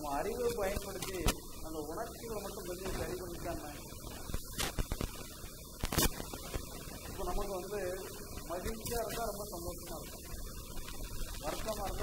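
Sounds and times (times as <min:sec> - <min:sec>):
man speaking: 0:00.0 - 0:03.8, 0:07.2 - 0:10.1, 0:11.4 - 0:12.0
electrical mains hum: 0:00.0 - 0:12.0.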